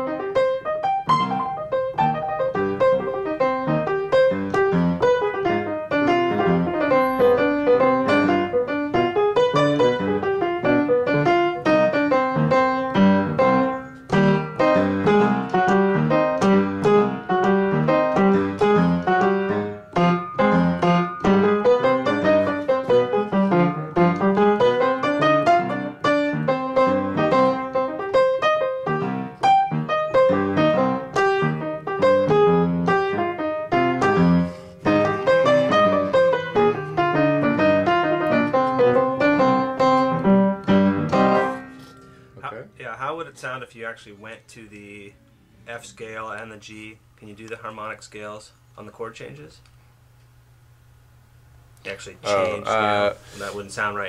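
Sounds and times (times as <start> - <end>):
upright piano playing: 0.0 - 46.9.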